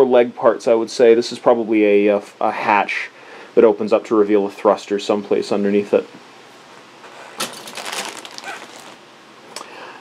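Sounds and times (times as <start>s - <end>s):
plastic crackling rustle: 7.0s - 9.0s.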